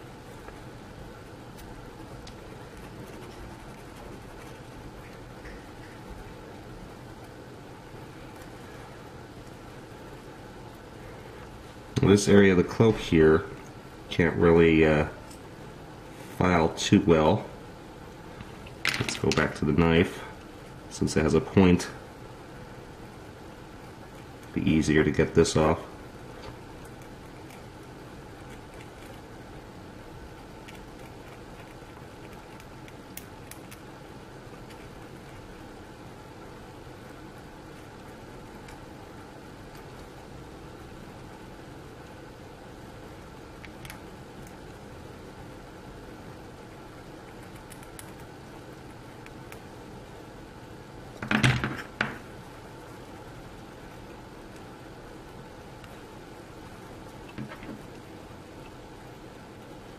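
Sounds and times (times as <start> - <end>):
low room hum: 0.0 - 59.9.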